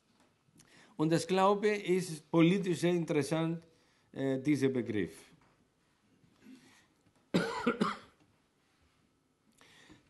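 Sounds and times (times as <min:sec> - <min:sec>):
person coughing: 0:07.3 - 0:08.2.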